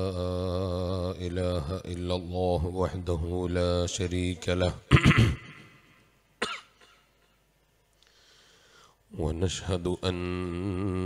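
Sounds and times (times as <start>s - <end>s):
man coughing: 4.9s - 7.1s.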